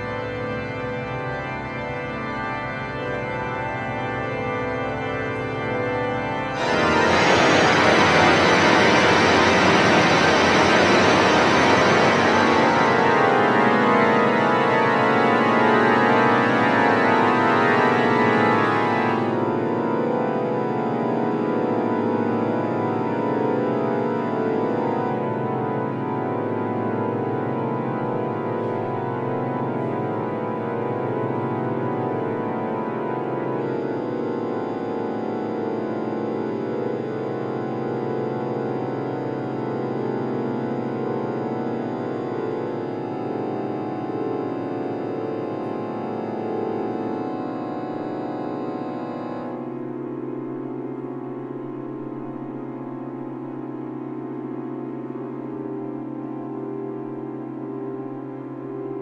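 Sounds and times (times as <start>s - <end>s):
organ playing held chords: 0.0s - 53.3s.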